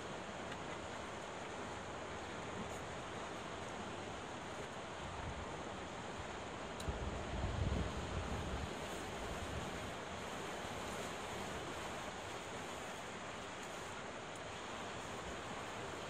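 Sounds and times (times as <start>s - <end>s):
low rumble of waves: 0.0s - 16.0s.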